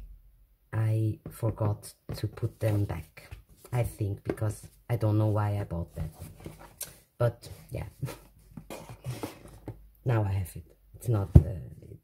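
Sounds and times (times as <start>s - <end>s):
book shifted across desk: 8.0s - 9.8s.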